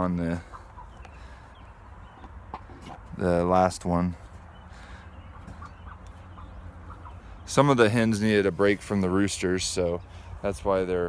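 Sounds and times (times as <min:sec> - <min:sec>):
hens clucking softly: 0:00.0 - 0:03.4, 0:04.0 - 0:09.2.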